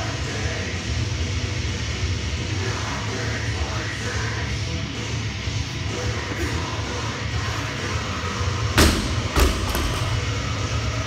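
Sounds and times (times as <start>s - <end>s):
barbell thudding on rubber floor: 8.8s - 10.2s.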